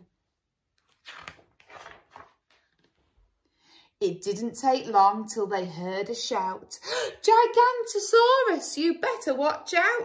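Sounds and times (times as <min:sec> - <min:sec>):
book pages rustling: 0:00.8 - 0:03.2.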